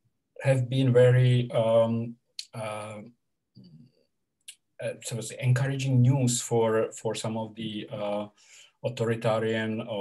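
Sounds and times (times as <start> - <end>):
man talking over video call: 0.2 - 10.0.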